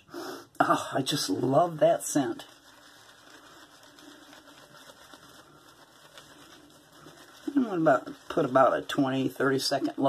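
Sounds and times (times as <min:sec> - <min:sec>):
shaving brush swishing on soap: 0:01.0 - 0:10.0.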